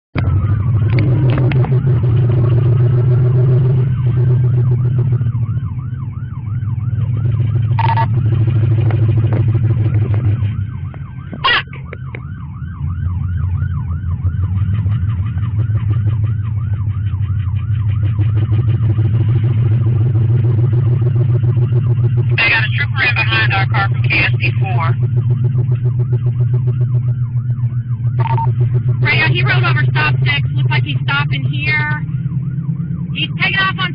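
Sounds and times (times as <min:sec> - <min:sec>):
engine and road rumble: 0:00.1 - 0:33.9
police siren wailing and yelping: 0:00.2 - 0:33.9
radio talk: 0:11.2 - 0:12.2, 0:22.3 - 0:25.1, 0:28.2 - 0:32.0, 0:33.1 - 0:33.9.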